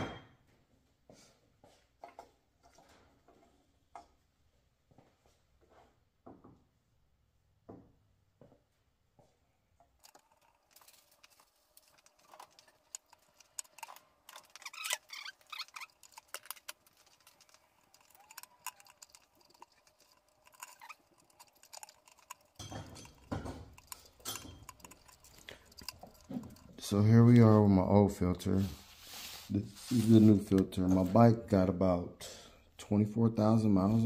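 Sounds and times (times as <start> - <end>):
small parts clicking and rattling: 10.0 - 27.4.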